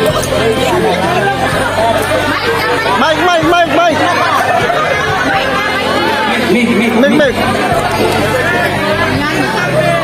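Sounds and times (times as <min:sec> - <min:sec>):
low music: 0:00.0 - 0:10.0
people talking: 0:00.0 - 0:10.0.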